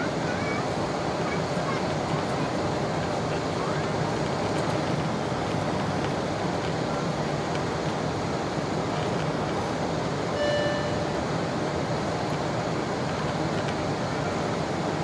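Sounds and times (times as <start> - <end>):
aircraft cabin airflow and engine noise: 0.0 - 15.0
short tone: 10.3 - 11.3.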